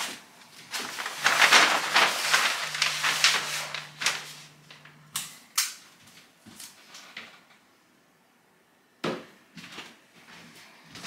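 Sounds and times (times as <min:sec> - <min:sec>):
paper sheets snapping and crackling: 0:00.0 - 0:05.8.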